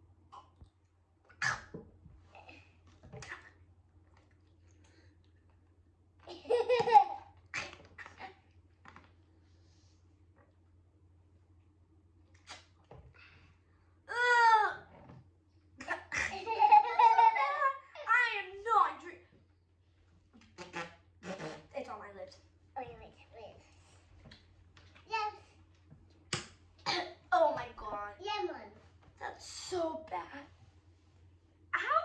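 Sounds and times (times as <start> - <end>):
children laughing: 6.3 - 7.3, 15.8 - 18.1
girl talking: 14.1 - 14.9, 15.8 - 19.3, 21.7 - 23.7, 25.1 - 25.5, 26.9 - 30.6, 31.8 - 32.0.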